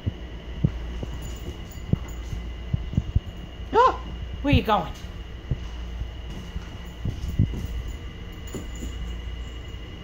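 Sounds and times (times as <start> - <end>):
low steady hum: 0.0 - 10.0
bare feet on tile floor: 4.9 - 9.7.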